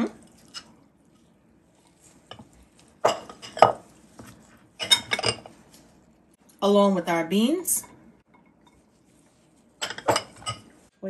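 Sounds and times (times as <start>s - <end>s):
spoon scraping glass bowl: 1.8s - 5.6s.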